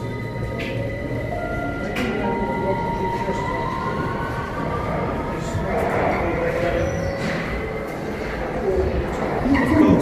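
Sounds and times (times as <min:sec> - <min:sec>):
rising whine: 0:00.0 - 0:09.8
steady tones: 0:00.0 - 0:10.0
train rumbling in tunnel: 0:00.0 - 0:10.0.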